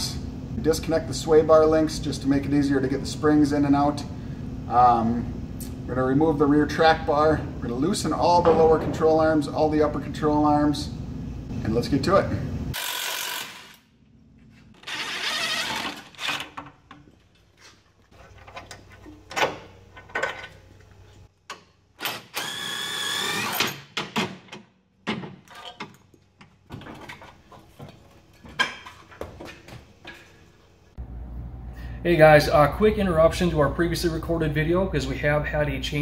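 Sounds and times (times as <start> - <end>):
impact wrench whirring: 12.7 - 13.9, 14.8 - 16.5, 22.0 - 24.0.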